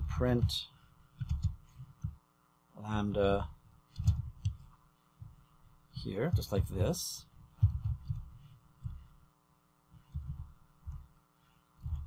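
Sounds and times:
low electrical hum: 0:00.0 - 0:12.0
computer keys typing: 0:01.2 - 0:02.1, 0:03.9 - 0:04.7.

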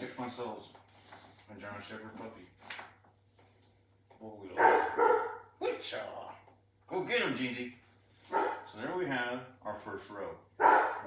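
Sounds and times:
puppy barking: 0:04.5 - 0:05.5, 0:08.3 - 0:08.7, 0:10.6 - 0:11.0.

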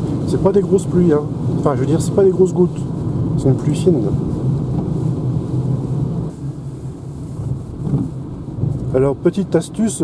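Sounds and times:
road and tyre rumble in car: 0:00.0 - 0:10.0.

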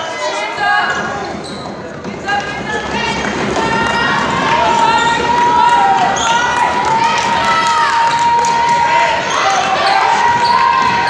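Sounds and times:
basketball bouncing on wood floor: 0:00.9 - 0:11.0
people calling out: 0:02.2 - 0:11.0.

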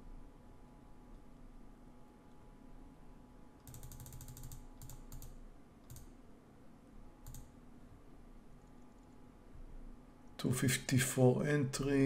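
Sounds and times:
computer keyboard keystrokes: 0:03.6 - 0:06.1, 0:07.2 - 0:07.5.

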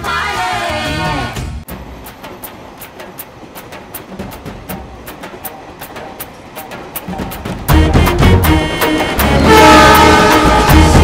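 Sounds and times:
drum hits: 0:01.7 - 0:11.0
held chord: 0:07.7 - 0:11.0.

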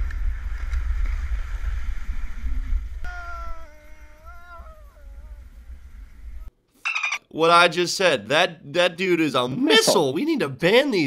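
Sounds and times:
wind rumbling on microphone: 0:00.0 - 0:03.1.

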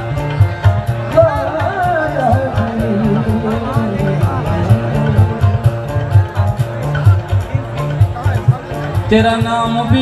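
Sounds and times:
fast hand-drum beat: 0:00.0 - 0:10.0
harmonium chords: 0:00.0 - 0:10.0.

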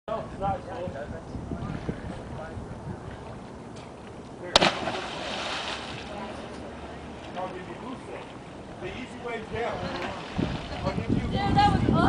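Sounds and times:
river water splashing: 0:04.5 - 0:11.0.

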